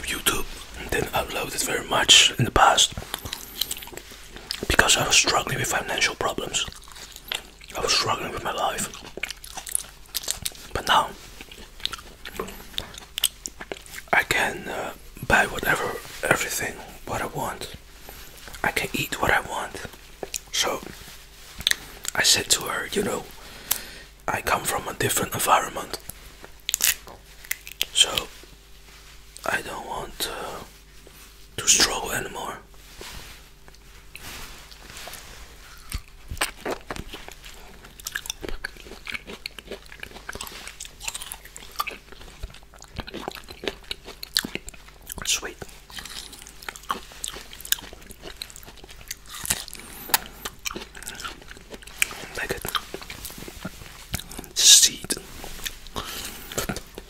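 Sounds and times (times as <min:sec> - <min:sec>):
wet mouth chewing: 0:02.9 - 0:05.1, 0:06.4 - 0:14.1, 0:35.1 - 0:57.0.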